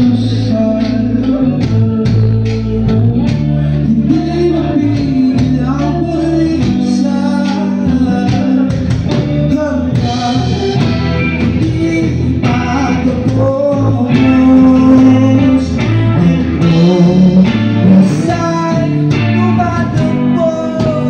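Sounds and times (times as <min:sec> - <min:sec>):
live rock band playing: 0:00.0 - 0:21.0
man singing into microphone: 0:00.0 - 0:21.0.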